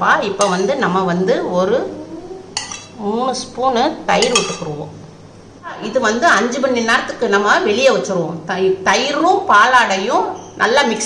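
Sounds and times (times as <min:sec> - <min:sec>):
spoon scraping steel vessels: 0:00.4 - 0:00.8, 0:02.6 - 0:03.0, 0:04.2 - 0:04.8
sharp metal clink: 0:04.2 - 0:04.7.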